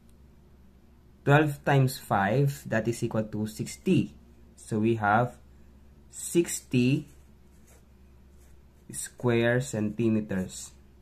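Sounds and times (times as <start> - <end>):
felt-tip marker scratching: 7.0 - 9.1.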